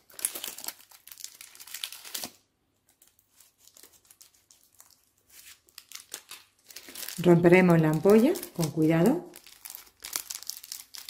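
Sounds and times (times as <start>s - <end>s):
packaging crinkling: 0.0s - 11.0s.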